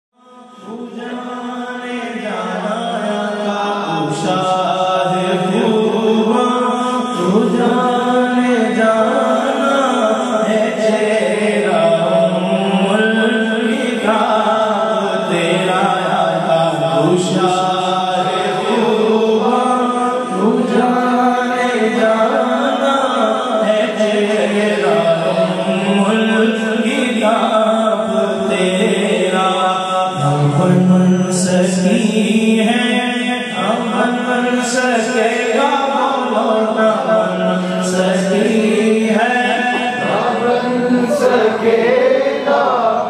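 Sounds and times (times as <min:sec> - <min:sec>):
man singing into a microphone: 0:00.1 - 0:43.0.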